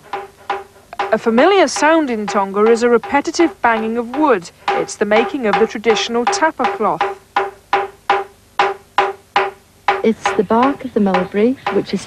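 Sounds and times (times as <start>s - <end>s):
wooden mallet beating on wood: 0.0s - 12.0s.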